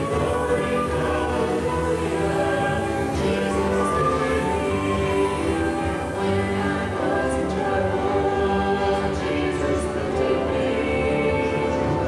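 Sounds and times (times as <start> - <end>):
choir singing sustained chords: 0.0 - 12.0.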